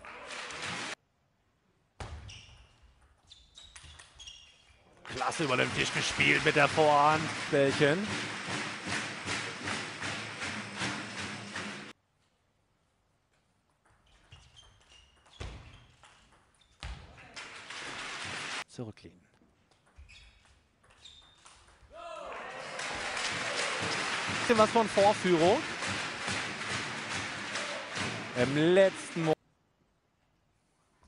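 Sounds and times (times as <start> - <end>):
crowd applause: 0.0 - 1.0, 5.1 - 11.9, 17.5 - 18.6, 22.2 - 29.4
shoes squeaking on floor: 2.1 - 5.0, 13.9 - 17.0, 19.8 - 21.7.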